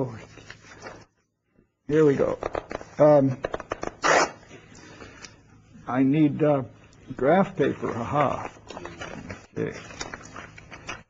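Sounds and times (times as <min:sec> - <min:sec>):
paper rustling and crinkling: 0:00.0 - 0:01.2, 0:07.6 - 0:11.0.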